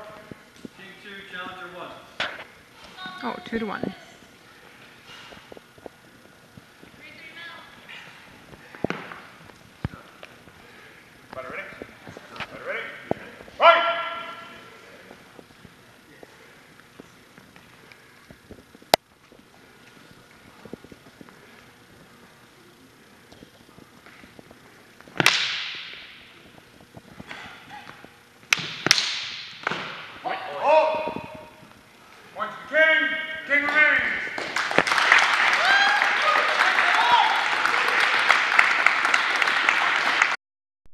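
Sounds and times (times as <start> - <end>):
people shouting: 13.6 - 14.5, 30.2 - 31.5, 35.6 - 37.5.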